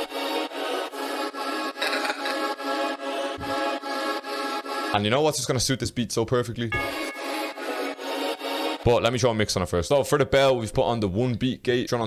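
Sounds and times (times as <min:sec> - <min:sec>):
bright gritty bell tone: 0:06.7 - 0:08.4.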